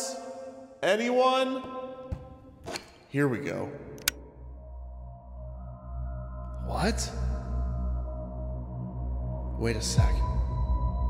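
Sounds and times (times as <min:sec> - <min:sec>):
sharp click: 0:04.0 - 0:04.2
eerie ambient drone music: 0:04.0 - 0:11.0.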